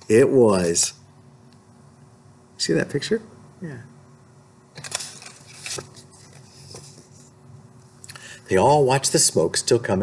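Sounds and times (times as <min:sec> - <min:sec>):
paper rustling: 0:04.8 - 0:07.3.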